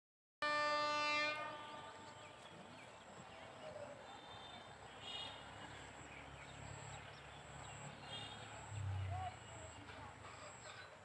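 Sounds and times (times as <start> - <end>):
train horn blast: 0.4 - 2.3
birds chirping: 1.5 - 11.0.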